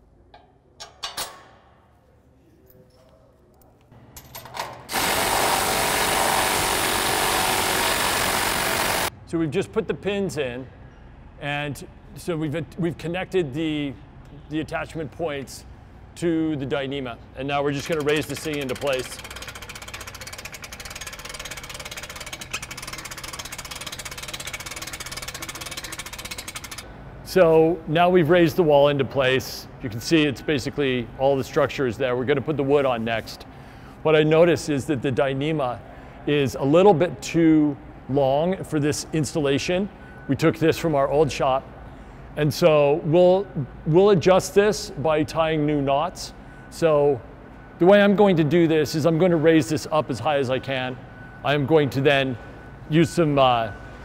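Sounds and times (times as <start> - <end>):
low mechanical hum: 0.0 - 54.0
metal parts clinking: 0.4 - 1.5, 4.1 - 4.9, 17.7 - 26.9
hoist clattering: 17.7 - 26.9.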